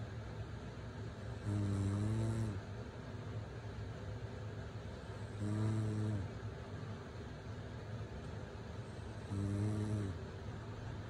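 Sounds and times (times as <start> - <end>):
woman snoring: 1.4 - 2.6, 5.3 - 6.3, 9.2 - 10.2.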